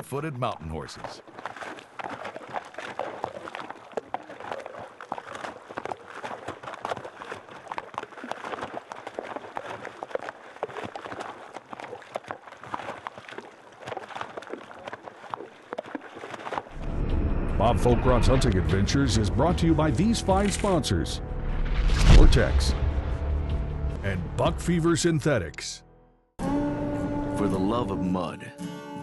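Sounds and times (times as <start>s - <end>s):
horses splashing in water: 0.0s - 16.8s.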